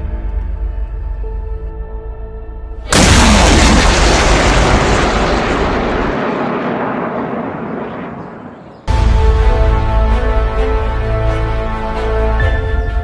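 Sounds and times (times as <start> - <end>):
background music: 0.0 - 3.7, 8.9 - 13.0.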